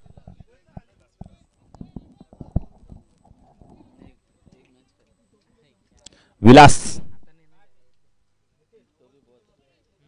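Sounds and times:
faint knocks and taps: 0:00.0 - 0:04.2.

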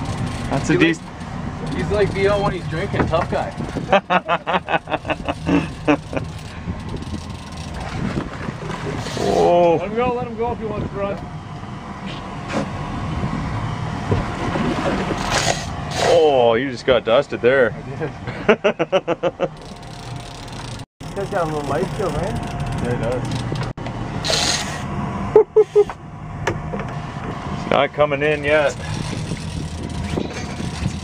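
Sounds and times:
boat motor running: 0:00.0 - 0:31.0
wind noise on microphone: 0:02.4 - 0:04.1, 0:06.1 - 0:11.1, 0:28.5 - 0:31.0
people laughing: 0:03.8 - 0:06.3, 0:18.3 - 0:19.6.

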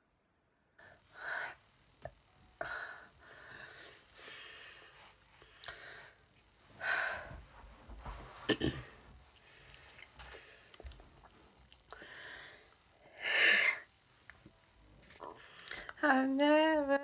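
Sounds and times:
person breathing and sighing: 0:11.8 - 0:13.9.

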